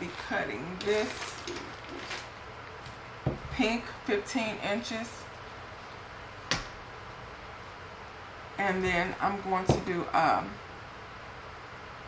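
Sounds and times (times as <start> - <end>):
mesh rustling: 0.0 - 3.0.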